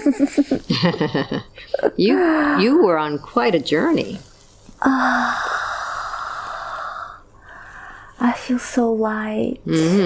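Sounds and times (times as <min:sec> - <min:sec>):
soft breath: 0:04.8 - 0:08.3.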